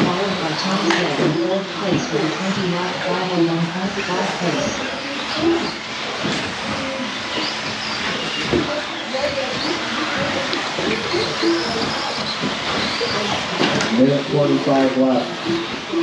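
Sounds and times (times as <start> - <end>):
electric motors whining: 0.0 - 16.0.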